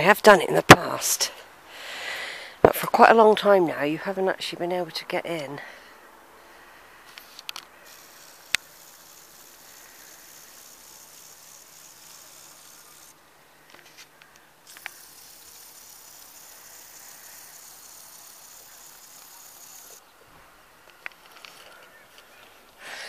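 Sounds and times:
small clicks: 7.1s - 11.2s, 13.7s - 20.0s, 20.8s - 22.8s.

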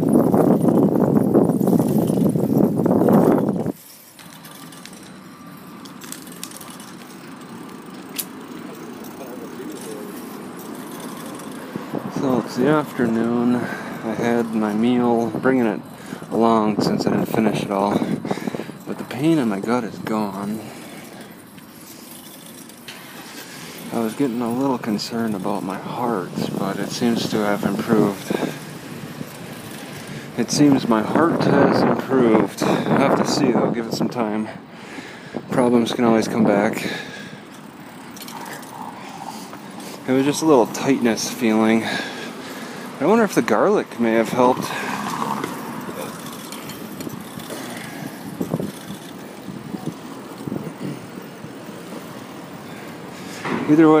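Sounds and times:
rustles: 0.0s - 16.4s, 17.2s - 31.0s, 36.9s - 54.0s
engine rumbling: 0.0s - 54.0s
hum of cars on street: 0.0s - 54.0s
traffic noise: 0.0s - 54.0s.

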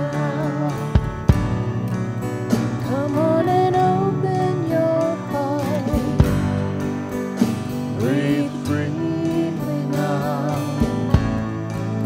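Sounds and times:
person singing: 0.0s - 1.3s, 2.8s - 6.4s, 7.9s - 12.0s
acoustic guitar strumming: 0.0s - 12.0s
keyboard chords: 0.0s - 12.0s.

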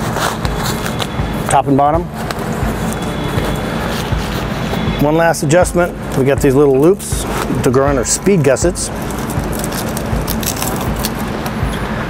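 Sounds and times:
velcro strap scratchy rustle: 0.0s - 4.9s, 8.9s - 11.6s.

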